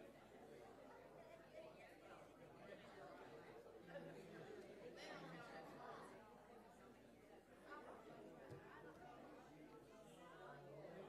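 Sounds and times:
faint chatter of people talking: 0:00.0 - 0:11.0.

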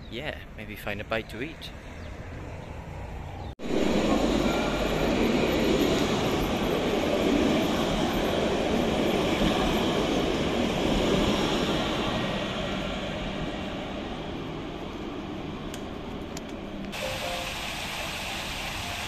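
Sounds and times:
faint tram whine: 0:01.7 - 0:19.0
tram wheels rumbling on rails: 0:02.2 - 0:19.0.

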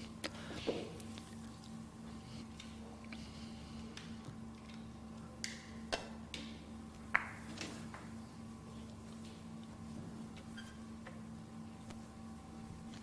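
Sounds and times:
low hall hum: 0:00.0 - 0:13.0.

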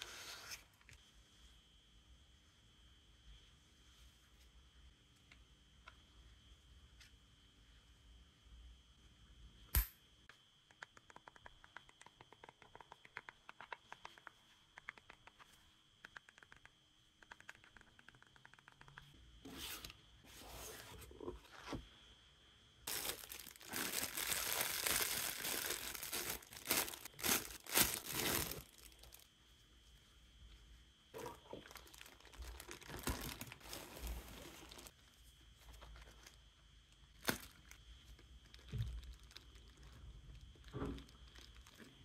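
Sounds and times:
plastic packaging crinkling and tearing: 0:22.9 - 0:29.2, 0:31.2 - 0:35.0, 0:37.2 - 0:37.8, 0:38.4 - 0:41.9.

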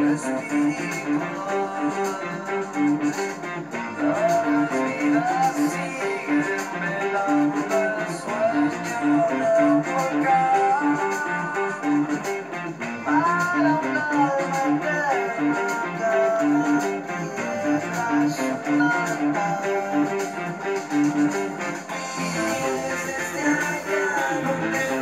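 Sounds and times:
electric guitar playing rock riff: 0:00.0 - 0:25.0.

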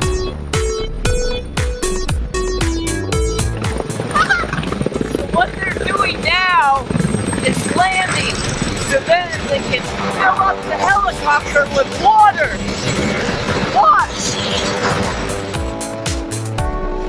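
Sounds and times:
electronic music with drum beat: 0:00.0 - 0:08.0, 0:09.1 - 0:16.8
steady noisy background: 0:03.4 - 0:15.9.

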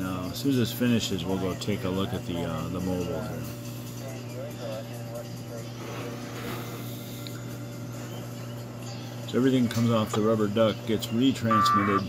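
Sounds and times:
faint indistinct voices: 0:00.0 - 0:12.0
steady low hum: 0:10.8 - 0:12.0.

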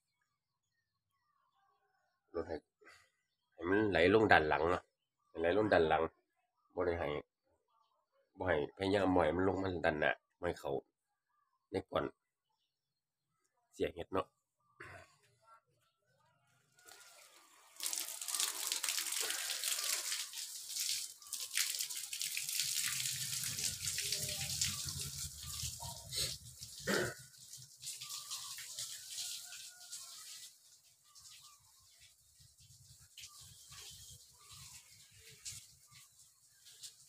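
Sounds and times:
water patter and dribble: 0:16.7 - 0:37.0
water pouring onto plastic bags: 0:16.8 - 0:37.0.

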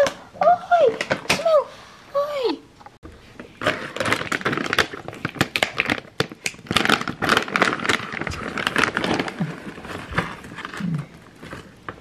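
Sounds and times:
light rustling of treat bag: 0:03.5 - 0:12.0.

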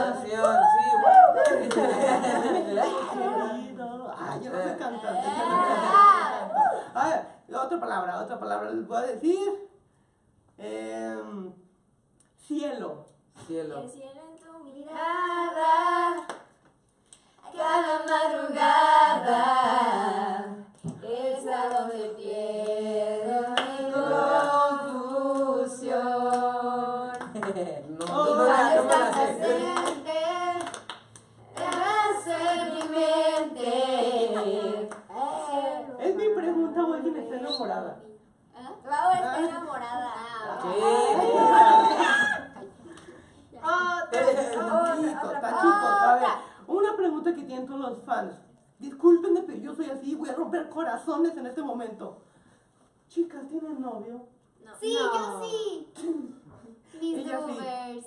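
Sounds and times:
young voices singing a cappella: 0:00.0 - 0:00.4, 0:04.3 - 0:06.6, 0:14.5 - 0:16.5, 0:17.4 - 0:27.4, 0:28.0 - 0:36.4
hand clapping: 0:28.9 - 0:30.0, 0:30.6 - 0:32.0.

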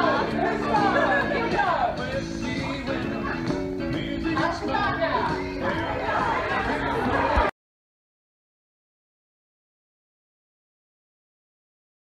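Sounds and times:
background music: 0:00.0 - 0:07.5
people chattering: 0:00.0 - 0:07.5.

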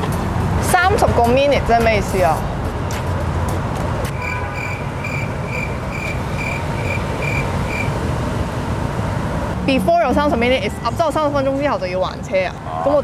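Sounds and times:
city street traffic: 0:00.0 - 0:13.0.

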